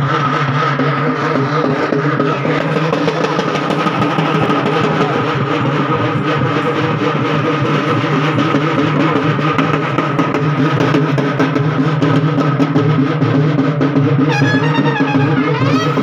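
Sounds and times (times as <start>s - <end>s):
rapid procession drumming: 0.0s - 16.0s.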